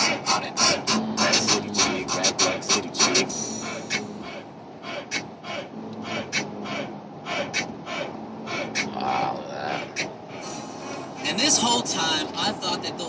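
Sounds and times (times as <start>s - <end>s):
hip-hop music on car radio: 0.0s - 9.0s, 9.8s - 13.0s
low steady hum: 0.0s - 13.0s.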